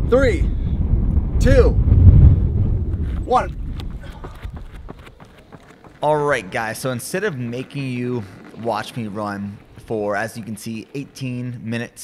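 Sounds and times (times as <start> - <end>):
wind rumbling on microphone: 0.0 - 6.8.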